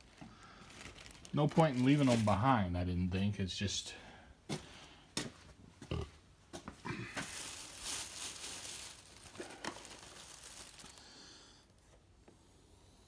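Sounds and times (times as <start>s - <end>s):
plastic bags rustling: 0.0s - 2.7s, 6.8s - 11.5s.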